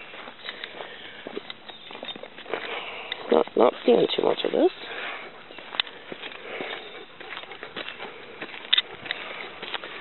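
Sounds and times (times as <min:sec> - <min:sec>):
dogs sniffing: 0:04.6 - 0:10.0.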